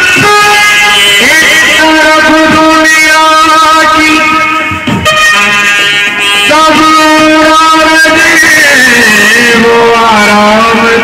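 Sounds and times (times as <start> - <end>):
wind instrument sliding notes: 3.8 - 8.4
brass band playing: 4.8 - 6.8.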